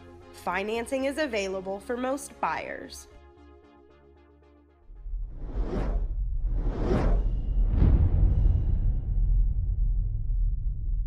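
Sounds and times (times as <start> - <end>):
deep steady rumble: 4.9 - 11.0
whooshes: 5.0 - 9.8.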